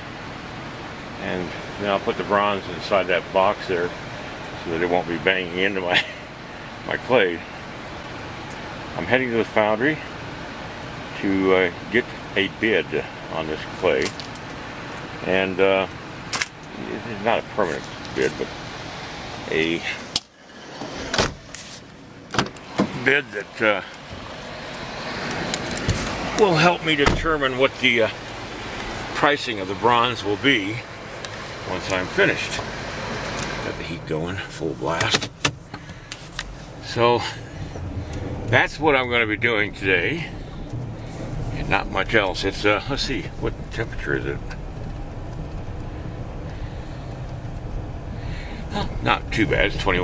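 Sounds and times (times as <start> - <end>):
van engine and road noise: 0.0 - 50.0
low thump: 27.0 - 27.4.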